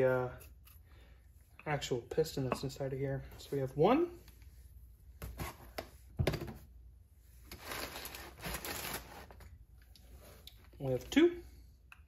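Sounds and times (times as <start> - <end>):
crumpled paper rustling: 7.5 - 9.5.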